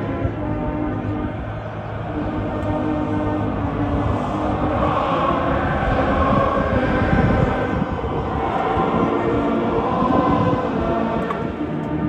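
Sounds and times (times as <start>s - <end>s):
brass band playing: 0.0s - 7.8s
crowd singing: 0.0s - 12.0s.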